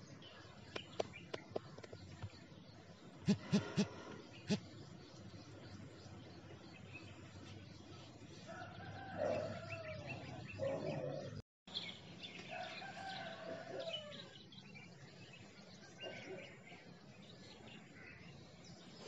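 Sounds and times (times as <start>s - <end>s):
bird calling: 3.2s - 4.7s.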